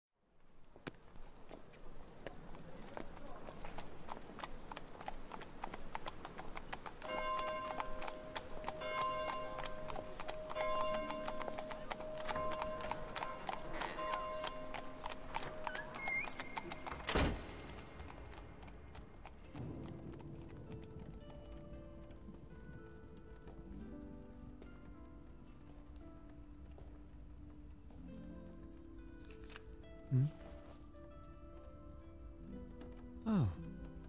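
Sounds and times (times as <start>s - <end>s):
horse hooves clip-clopping: 0.4s - 29.8s, 30.4s - 33.2s.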